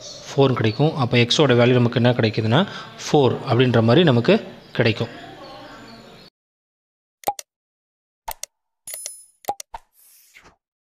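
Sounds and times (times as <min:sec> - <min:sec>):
short clicks: 0:07.2 - 0:07.5.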